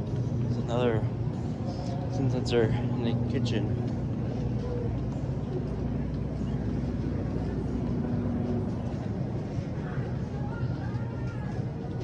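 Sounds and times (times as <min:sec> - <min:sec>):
refrigeration hum: 0:00.0 - 0:12.0.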